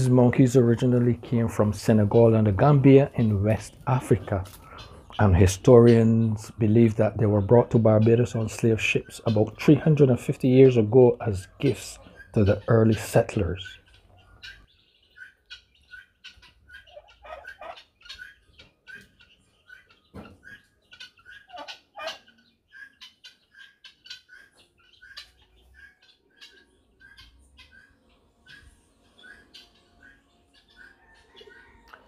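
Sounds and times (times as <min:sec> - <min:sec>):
guineafowl calling: 0:00.0 - 0:32.0.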